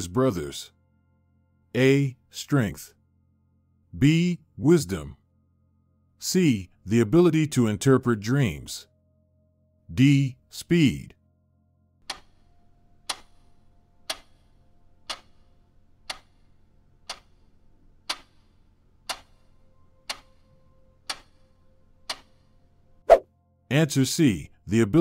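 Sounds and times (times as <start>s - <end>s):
countdown timer ticking: 12.0s - 22.5s.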